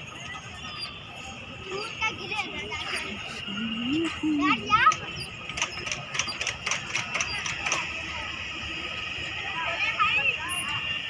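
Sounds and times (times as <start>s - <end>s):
metal pivots clicking and knocking: 5.2s - 7.8s.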